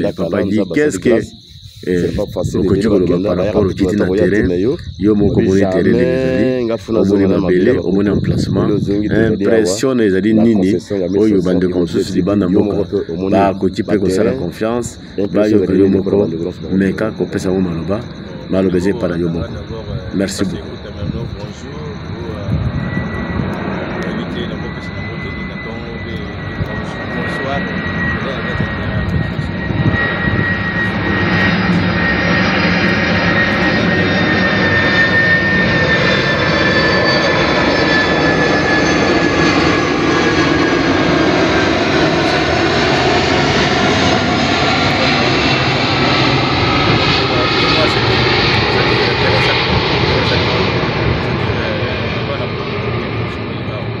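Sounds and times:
airplane passing overhead: 0.0 - 54.0
high engine whine: 0.0 - 54.0.

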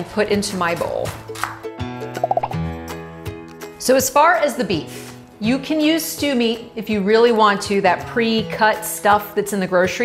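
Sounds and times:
background music with bass line: 1.2 - 3.7.

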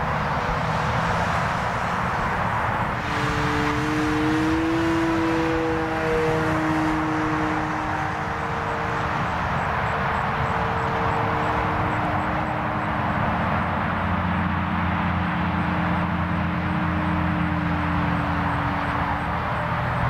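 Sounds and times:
model airplane propeller drone: 0.0 - 20.0.

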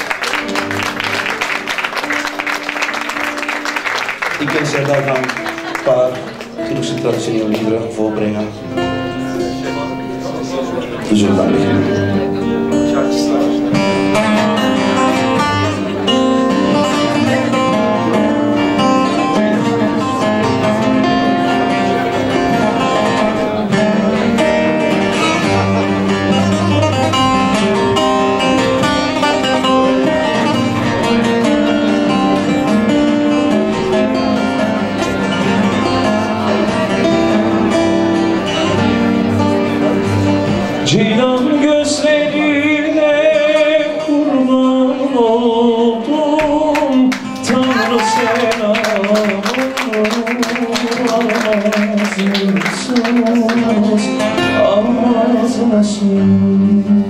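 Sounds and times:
acoustic guitar accompaniment: 0.0 - 57.0
plucked lute melody: 5.6 - 44.6.

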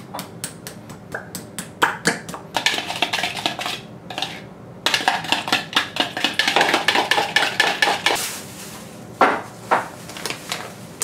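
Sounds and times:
metal spoon scraping mixing bowl: 2.5 - 8.2.

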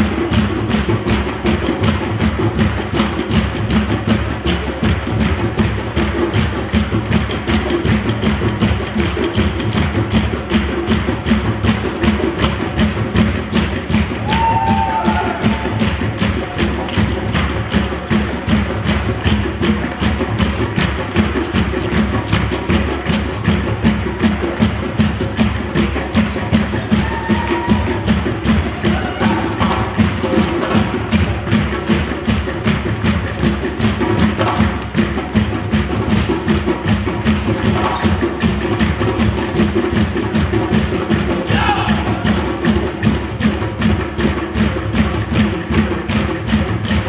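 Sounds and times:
hand drums playing fast rhythm: 0.0 - 47.0.

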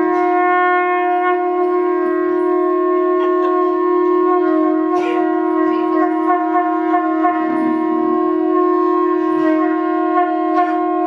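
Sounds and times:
conch shells blown: 0.0 - 11.0.

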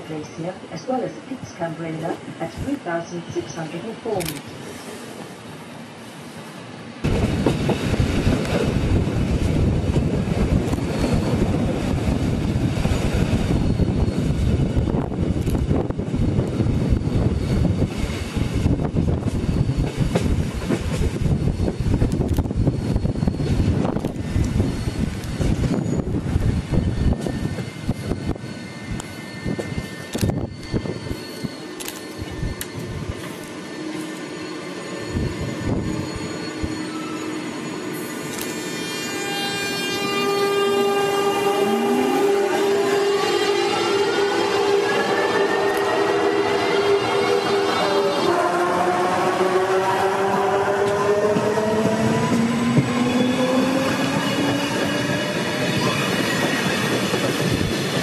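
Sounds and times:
train wheels rumbling on rails: 7.0 - 58.0
electric train motors whining: 7.1 - 58.0.

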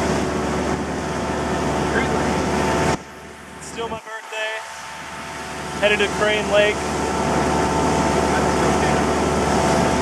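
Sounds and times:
rush of wind and water: 0.0 - 3.0, 3.6 - 10.0
motorboat engine droning: 0.0 - 10.0.

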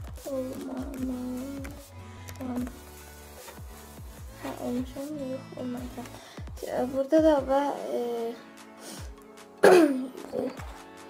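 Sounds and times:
quiet background music: 0.0 - 11.0
person clearing throat: 9.6 - 10.6.

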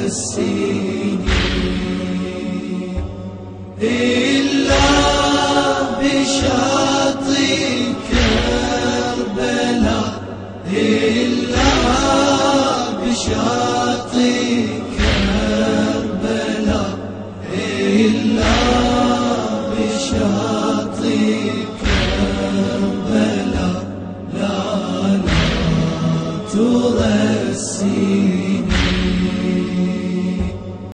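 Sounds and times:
men chanting a lament: 0.0 - 30.9
heavy low beat: 0.8 - 30.9.

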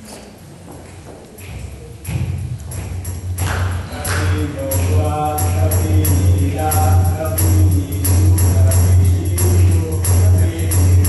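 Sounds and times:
sharp percussive hits: 2.0 - 11.0.

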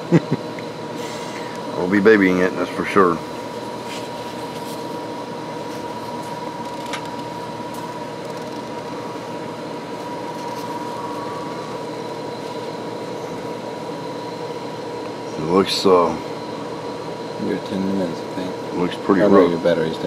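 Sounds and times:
mechanical room hum: 0.0 - 20.0
thin high whine: 0.0 - 20.0.

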